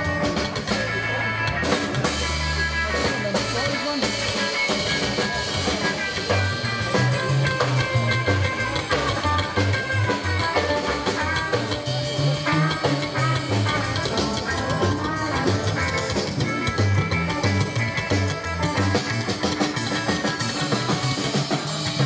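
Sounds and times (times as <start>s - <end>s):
double bass: 0.0s - 22.0s
drum kit: 0.0s - 22.0s
electric guitar: 0.0s - 22.0s.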